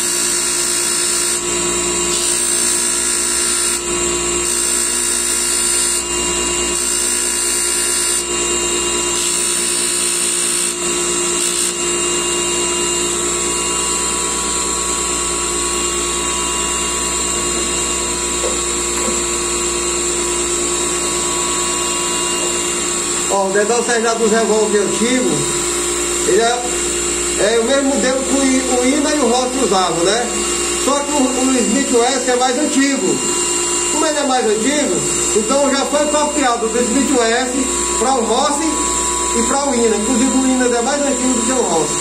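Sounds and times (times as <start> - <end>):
polishing wheel motor whining: 0.0 - 42.0.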